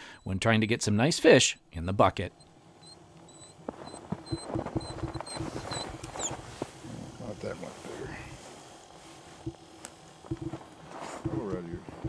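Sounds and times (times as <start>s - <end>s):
reel squeaks: 2.8s - 6.5s.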